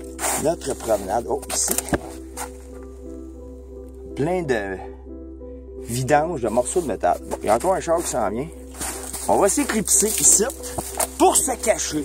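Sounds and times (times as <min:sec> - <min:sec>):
background music chord: 0:00.0 - 0:12.0.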